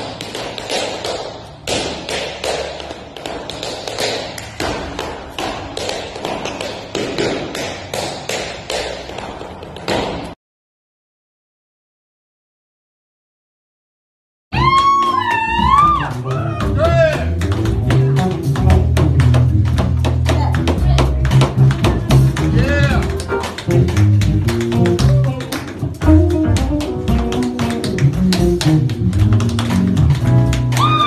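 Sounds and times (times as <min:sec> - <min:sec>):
live band playing: 0:14.6 - 0:31.0
tap shoes clicking: 0:14.6 - 0:31.0.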